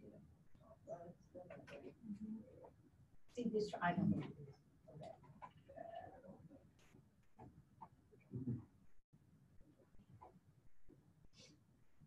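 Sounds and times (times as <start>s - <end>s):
faint classroom murmuring: 0.0s - 2.8s, 3.4s - 6.6s.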